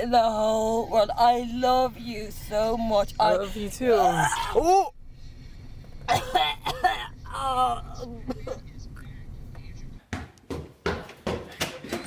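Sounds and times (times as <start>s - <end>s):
person coughing: 6.1s - 7.2s, 8.1s - 8.7s.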